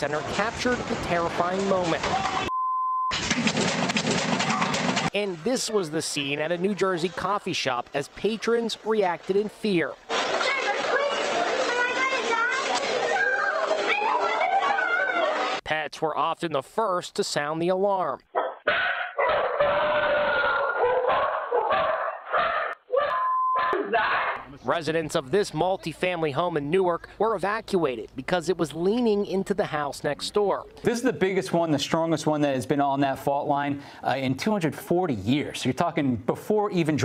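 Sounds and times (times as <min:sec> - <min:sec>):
rattling and clattering: 0:03.1 - 0:05.2
dog barking: 0:18.3 - 0:24.4.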